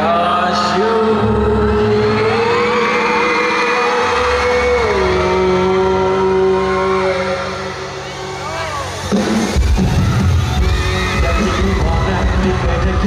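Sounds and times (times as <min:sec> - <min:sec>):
singer and band holding long note: 0:00.0 - 0:13.0
fans screaming: 0:00.7 - 0:13.0
steady bass: 0:04.6 - 0:13.0.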